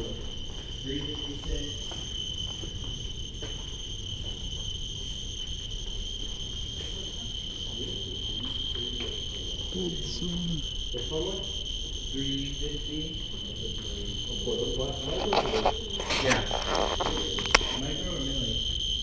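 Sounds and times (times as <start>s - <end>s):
geiger counter chirping: 0.0s - 19.0s.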